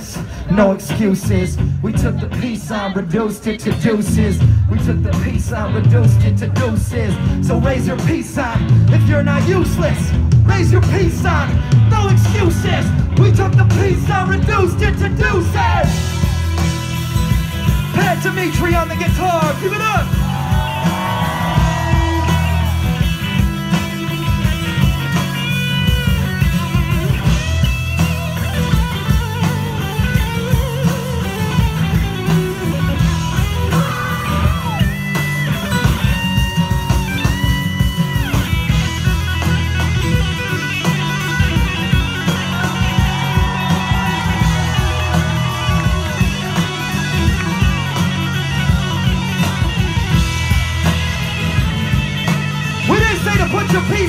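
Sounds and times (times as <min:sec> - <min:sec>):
bass guitar: 0:00.0 - 0:54.0
drums: 0:00.0 - 0:54.0
electric guitar solo: 0:18.9 - 0:54.0.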